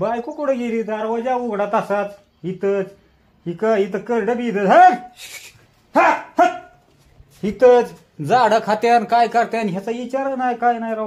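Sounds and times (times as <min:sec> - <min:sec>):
man's voice: 0:00.0 - 0:11.0.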